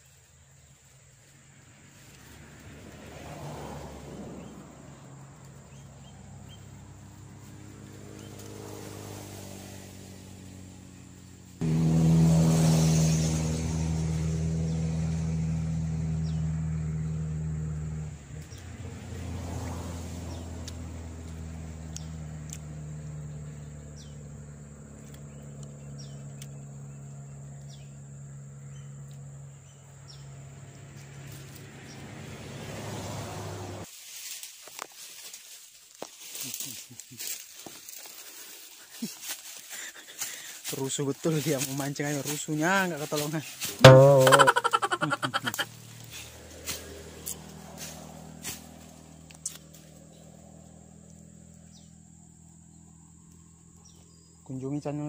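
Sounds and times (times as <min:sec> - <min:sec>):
motor vehicle engine: 0:01.5 - 0:33.9, 0:43.8 - 0:54.5.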